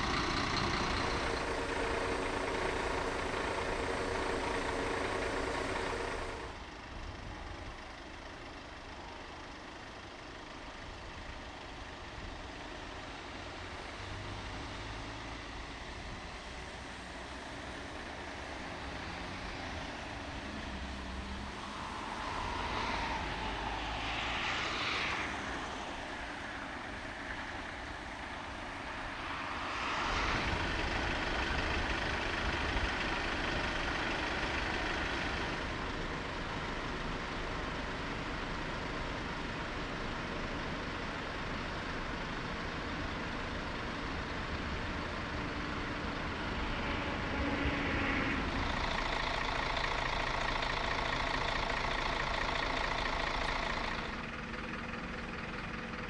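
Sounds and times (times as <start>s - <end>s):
diesel engines idling: 0.0s - 56.0s.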